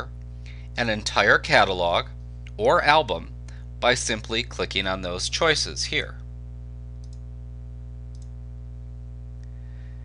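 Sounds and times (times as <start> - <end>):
steady low hum: 0.0 - 10.0
computer mouse click: 7.0 - 7.2, 8.1 - 8.3.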